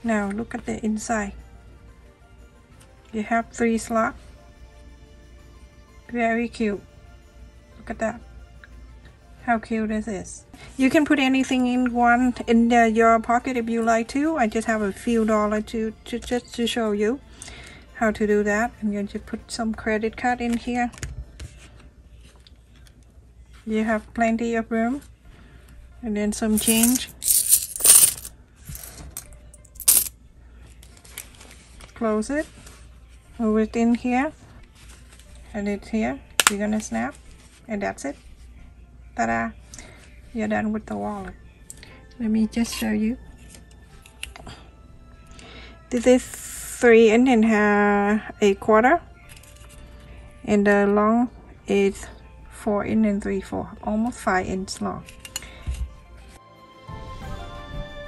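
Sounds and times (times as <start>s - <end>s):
faint music: 0.0s - 58.0s
coins jingling and clinking: 26.5s - 30.1s.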